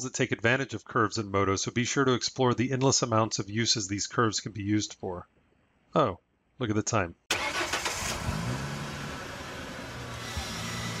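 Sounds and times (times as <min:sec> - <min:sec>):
car engine running: 0:08.0 - 0:11.0.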